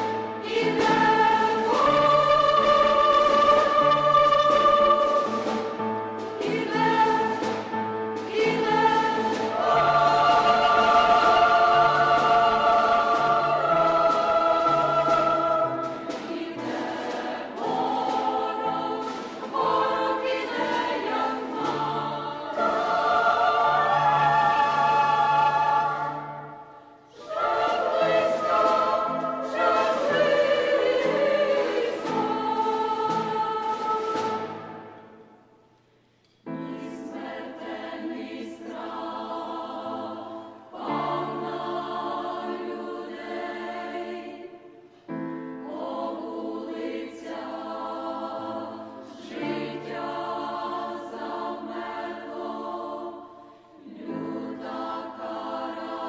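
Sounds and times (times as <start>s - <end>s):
women's choir singing: 0.0s - 35.4s, 36.5s - 56.0s.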